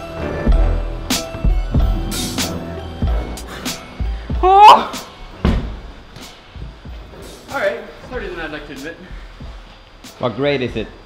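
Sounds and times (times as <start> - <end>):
heavy thud on crash mat: 5.4 - 6.0.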